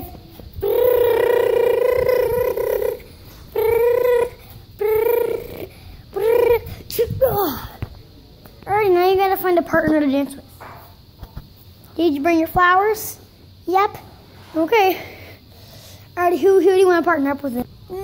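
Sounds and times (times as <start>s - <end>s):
child imitating car engine: 0.0s - 7.8s.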